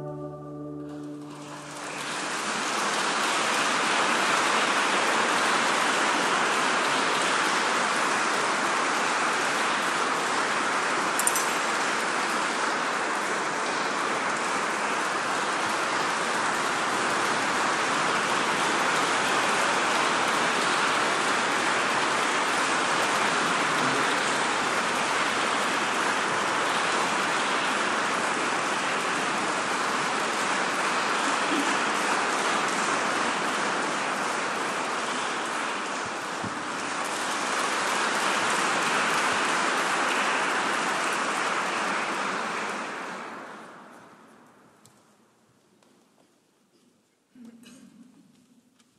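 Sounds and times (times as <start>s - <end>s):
large audience applauding: 0.0s - 44.2s.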